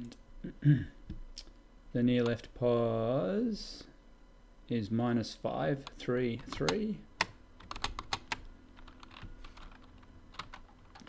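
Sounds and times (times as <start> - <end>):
computer keyboard typing: 6.4 - 11.0.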